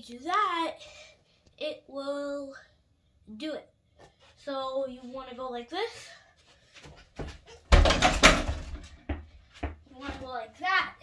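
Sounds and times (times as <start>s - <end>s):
child's voice: 0.0s - 3.7s, 4.4s - 6.3s, 9.9s - 11.0s
hoop rattling against door: 7.6s - 9.0s
ball crashing on basketball hoop: 7.7s - 9.2s.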